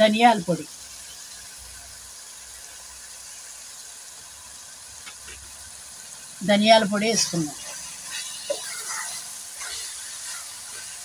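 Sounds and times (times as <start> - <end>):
meat sizzling in a pot: 0.0 - 11.0.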